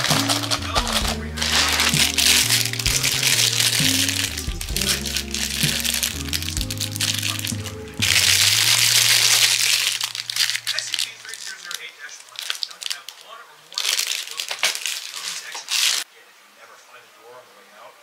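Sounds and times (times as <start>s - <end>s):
background music: 0.0s - 10.6s
plastic bag crinkling: 0.0s - 16.1s.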